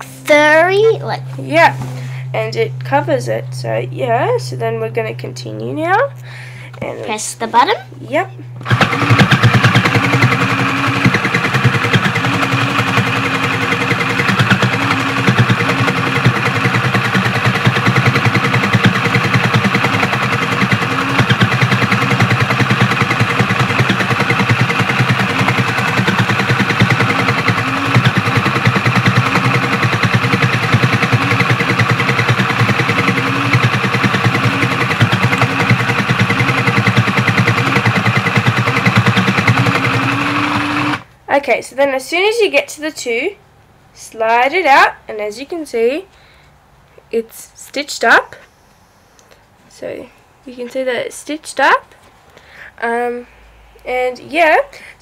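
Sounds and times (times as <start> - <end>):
motor hum: 0.0 - 41.1
toy sewing machine clatter: 8.6 - 41.0.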